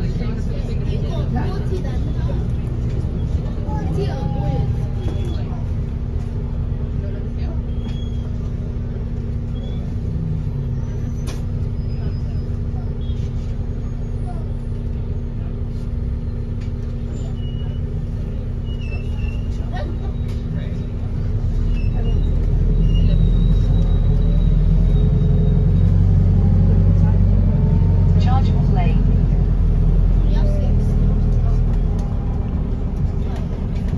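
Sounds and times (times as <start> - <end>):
bus drivetrain hum: 0.0 - 33.9
faint passenger voices: 0.0 - 33.9
low rumble: 20.4 - 33.9.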